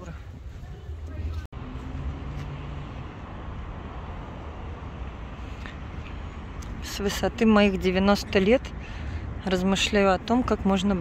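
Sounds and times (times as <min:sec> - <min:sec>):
car road noise rumble: 0:00.0 - 0:11.0.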